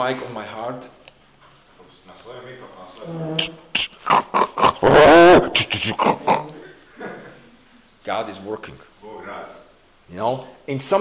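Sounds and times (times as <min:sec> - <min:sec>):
sharp hissing mouth sounds: 0:03.3 - 0:06.5
man growling into microphone: 0:03.4 - 0:06.6.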